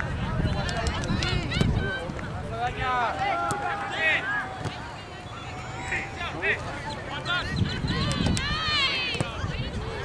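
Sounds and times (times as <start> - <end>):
people shouting: 2.8 - 6.6.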